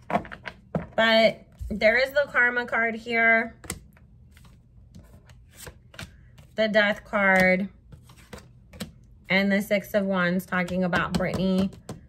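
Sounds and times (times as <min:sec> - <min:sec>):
cards clicking and rustling: 0:03.6 - 0:06.6, 0:07.3 - 0:09.1.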